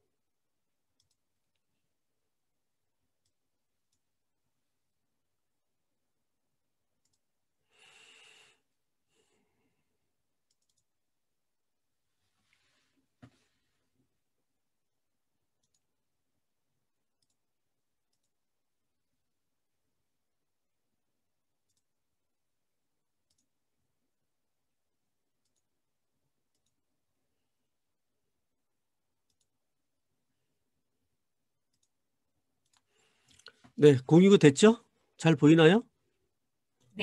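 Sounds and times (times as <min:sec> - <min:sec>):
computer mouse clicks: 0:01.0 - 0:01.6, 0:07.0 - 0:07.3, 0:10.4 - 0:10.9, 0:15.6 - 0:15.9, 0:17.2 - 0:17.4, 0:18.1 - 0:18.4, 0:21.6 - 0:21.9, 0:23.2 - 0:23.5, 0:25.4 - 0:25.7, 0:26.5 - 0:26.8, 0:29.2 - 0:29.6, 0:31.7 - 0:32.0, 0:32.6 - 0:33.8.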